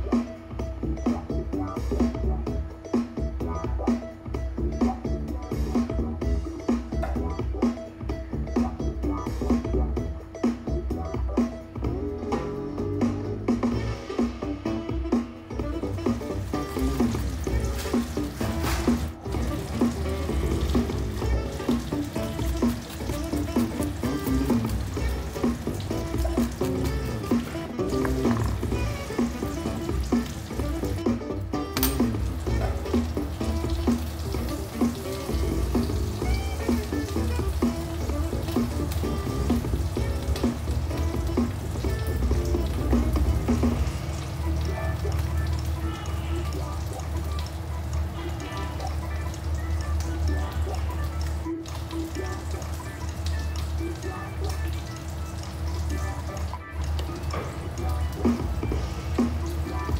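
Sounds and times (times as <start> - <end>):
background music: 0.0 - 59.9
fish sizzling in hot oil: 15.7 - 59.9.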